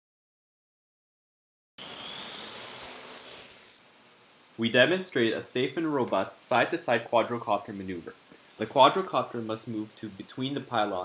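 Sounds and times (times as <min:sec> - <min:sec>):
drone motors whirring: 0:01.8 - 0:04.6.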